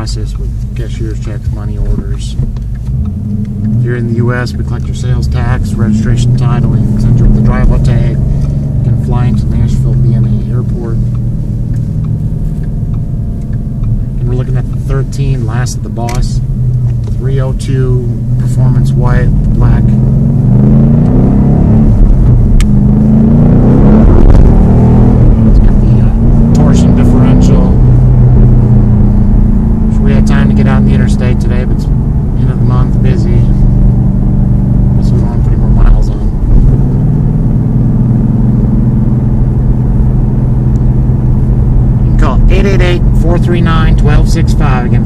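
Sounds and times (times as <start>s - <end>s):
car engine accelerating: 0.0s - 45.0s.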